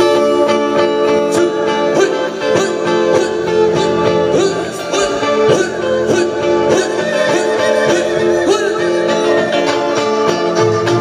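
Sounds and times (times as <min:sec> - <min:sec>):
person singing: 0:00.0 - 0:11.0
strummed acoustic strings: 0:00.0 - 0:11.0.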